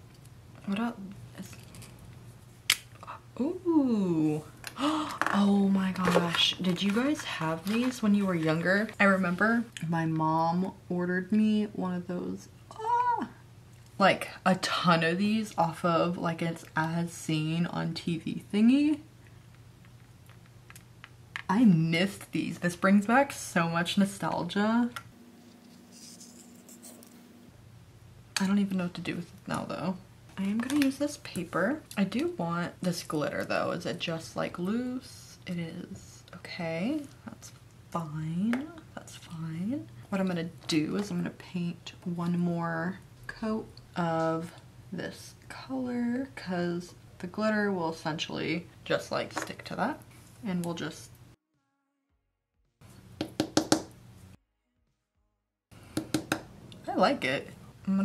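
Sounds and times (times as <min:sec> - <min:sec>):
low steady hum: 0:00.0 - 0:51.4
small objects scratching and rubbing: 0:05.3 - 0:09.0, 0:25.4 - 0:27.1.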